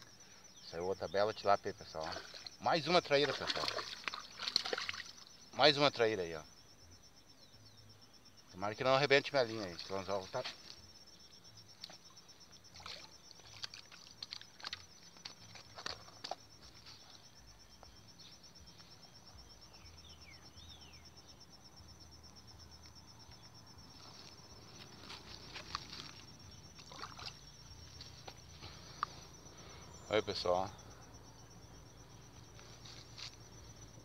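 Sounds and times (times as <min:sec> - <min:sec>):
insect trilling: 0:00.0 - 0:34.0
water splashing: 0:01.9 - 0:05.2, 0:12.7 - 0:16.4, 0:26.8 - 0:27.6.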